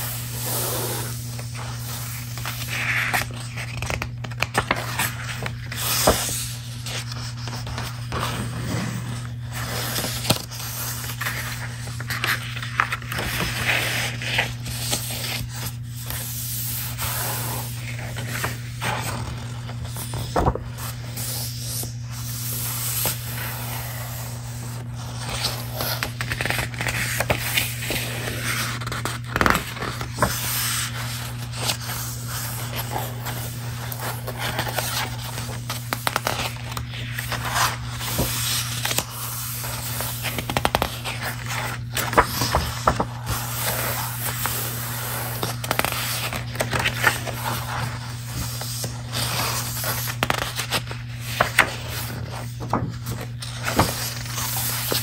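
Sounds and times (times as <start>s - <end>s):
book pages rustling and crackling: 0.0s - 55.0s.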